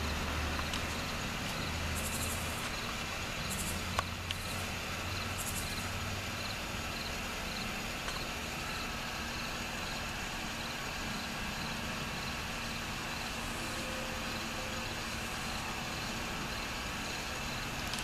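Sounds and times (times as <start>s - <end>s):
background hiss: 0.0s - 18.0s.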